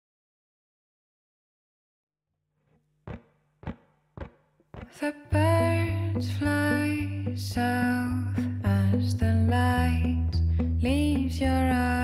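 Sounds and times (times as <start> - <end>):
percussive knocks with ring: 3.1 - 4.9.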